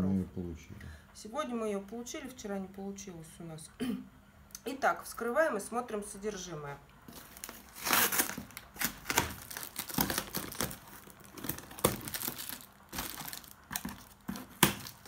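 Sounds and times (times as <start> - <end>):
plastic wrap crinkling and tearing: 7.1 - 15.0.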